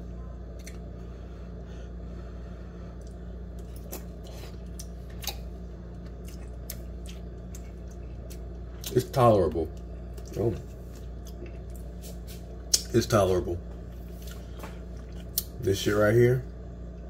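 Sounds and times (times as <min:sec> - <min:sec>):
steady low hum: 0:00.0 - 0:17.0
chewing: 0:03.0 - 0:09.1, 0:09.7 - 0:11.9, 0:13.8 - 0:15.6.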